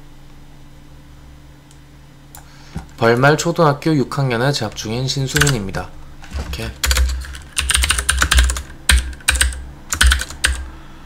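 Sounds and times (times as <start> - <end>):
keyboard typing: 4.6 - 10.7.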